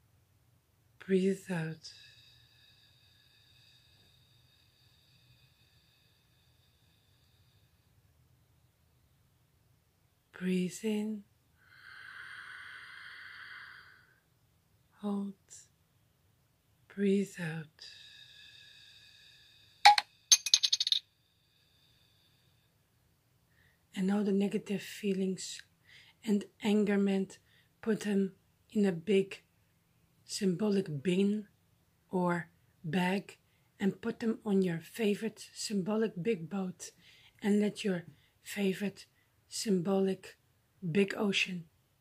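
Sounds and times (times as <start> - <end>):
rattle of small clinks: 19.9 - 21.0
sharp metallic clink: 19.9 - 21.0.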